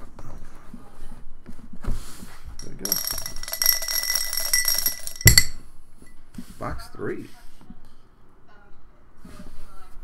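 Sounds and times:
dice knocking onto table: 0:02.6 - 0:05.6
dice rattling in cup: 0:02.6 - 0:05.6.

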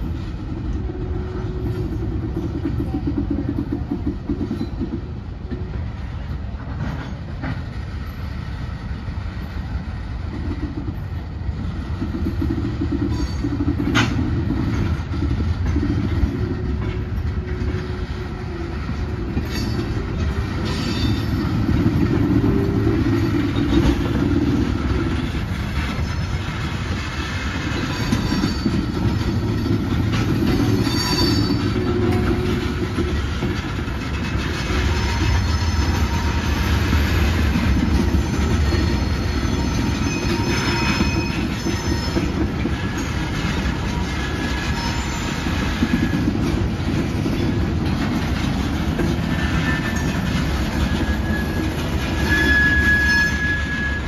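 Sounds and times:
diesel locomotive rumble: 0:00.0 - 0:54.0
wheels clattering over rail joints: 0:00.0 - 0:54.0
wheel flanges squealing: 0:13.0 - 0:54.0.

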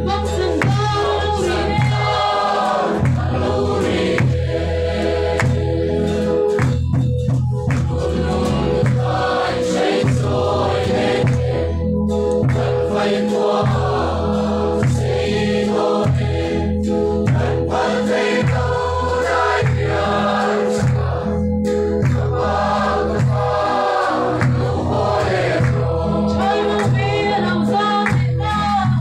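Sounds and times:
people singing in chorus: 0:00.6 - 0:07.0, 0:07.7 - 0:28.4.

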